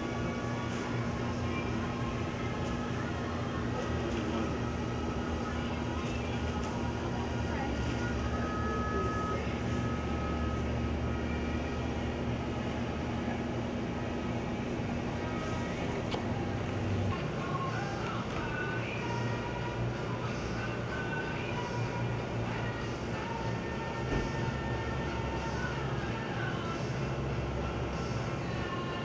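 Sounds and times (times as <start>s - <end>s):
low machine hum: 0.0s - 29.0s
murmur of indistinct voices: 0.2s - 24.0s.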